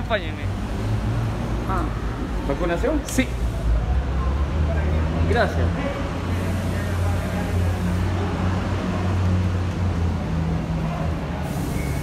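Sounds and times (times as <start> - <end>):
vehicle engines idling: 0.0 - 12.0.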